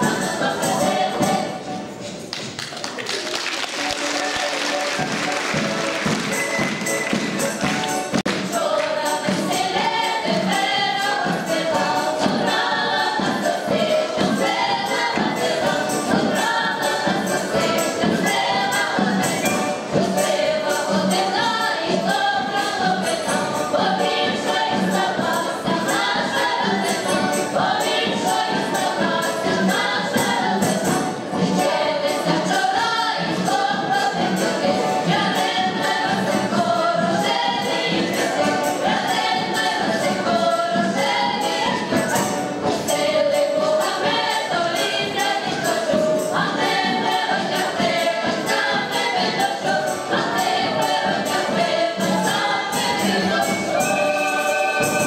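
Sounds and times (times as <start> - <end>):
folk choir singing: 0.0 - 2.1, 3.8 - 55.0.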